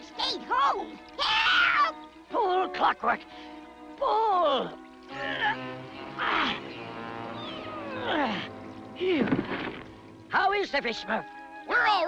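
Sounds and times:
background music notes: 0.0s - 12.0s
falling pitch sound effect: 7.2s - 8.2s.

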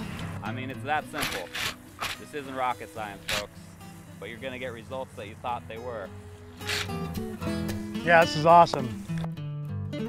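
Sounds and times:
background music held notes: 0.0s - 10.0s
short hiss: 6.2s - 7.8s.

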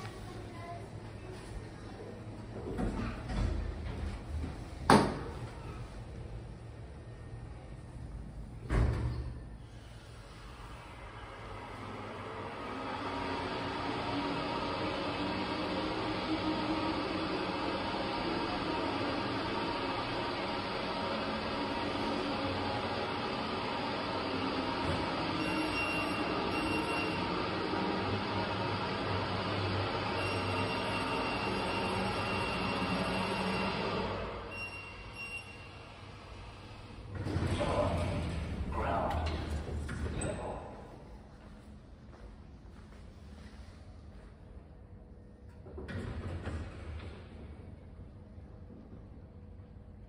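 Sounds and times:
elevator rushing ride noise: 0.0s - 41.3s.

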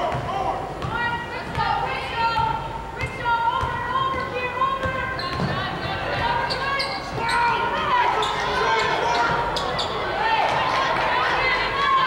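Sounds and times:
sneakers squeaking on floor: 4.8s - 10.1s.

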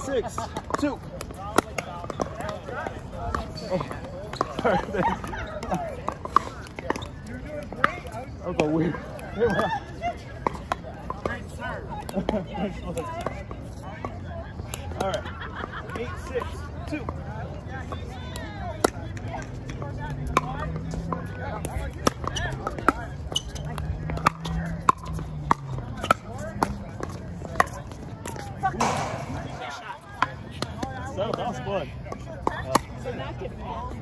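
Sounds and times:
murmur of voices: 0.0s - 34.0s.

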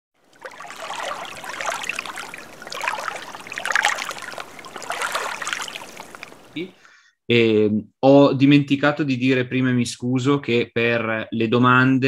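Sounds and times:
stream trickling: 0.2s - 6.8s.

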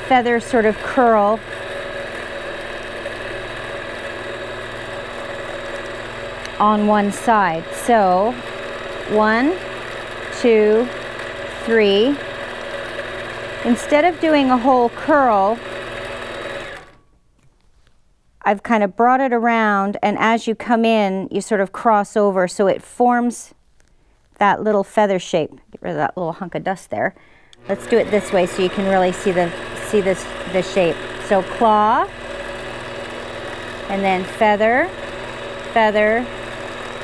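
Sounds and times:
quilting machine running: 0.0s - 17.0s, 27.6s - 37.0s.

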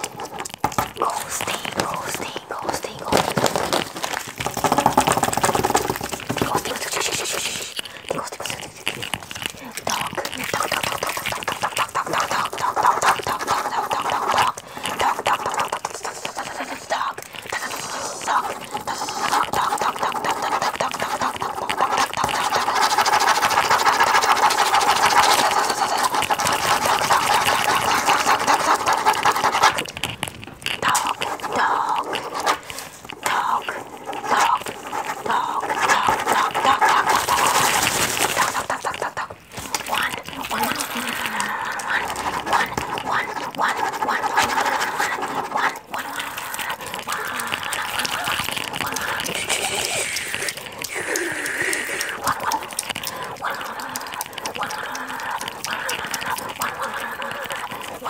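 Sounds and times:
paper rustling: 0.0s - 50.7s
pen scribbling on paper: 0.0s - 58.0s.

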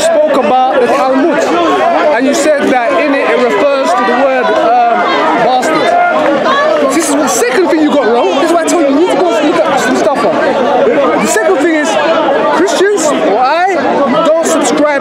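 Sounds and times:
men arguing: 0.0s - 15.0s.

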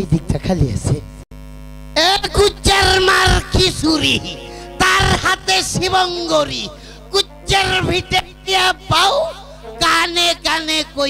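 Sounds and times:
electrical mains hum: 0.0s - 11.0s
loud voice through microphones: 2.0s - 11.0s.

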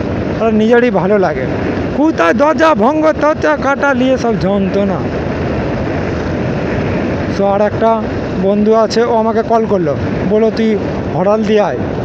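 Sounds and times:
wind and road noise: 0.0s - 12.0s.

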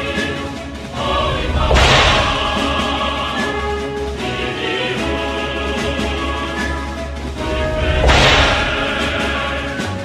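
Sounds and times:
background music: 0.0s - 10.0s
swoosh hit: 1.0s - 3.2s, 7.6s - 9.2s.

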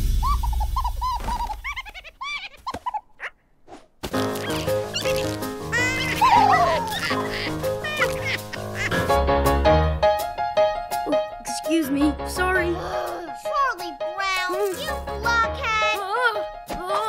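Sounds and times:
high chirping cartoon calls: 0.0s - 3.4s, 4.3s - 9.0s.

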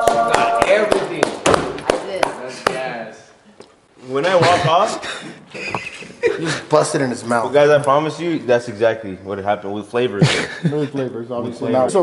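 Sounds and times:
sharp hand claps: 0.0s - 2.8s.

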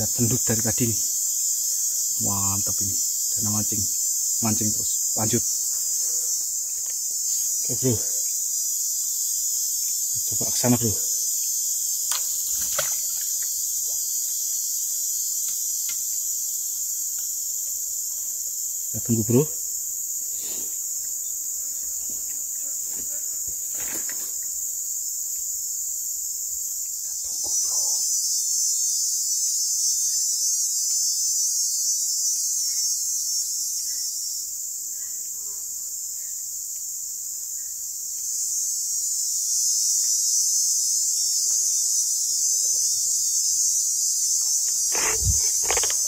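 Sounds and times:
high-pitched insect chorus: 0.0s - 46.0s.

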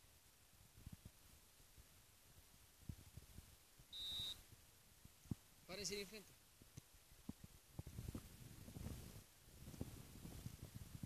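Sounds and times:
referee's whistle blast: 3.9s - 4.4s.

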